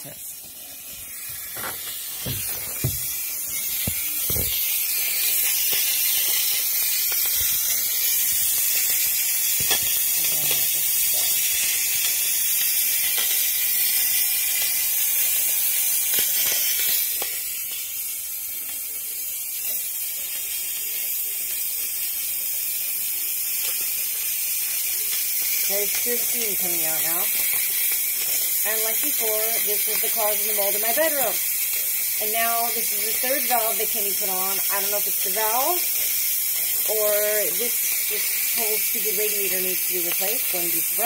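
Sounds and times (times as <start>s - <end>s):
radiator valve hissing steam: 0.0s - 41.0s.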